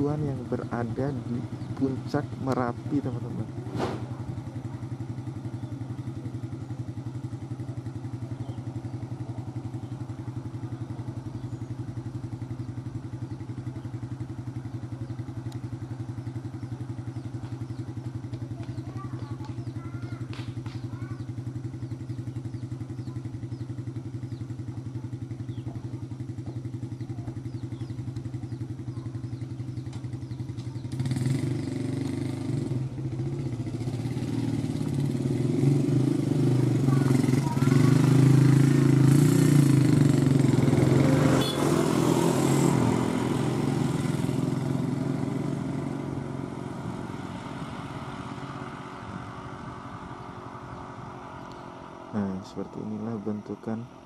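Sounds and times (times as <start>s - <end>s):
small engine idling: 0.0s - 54.0s.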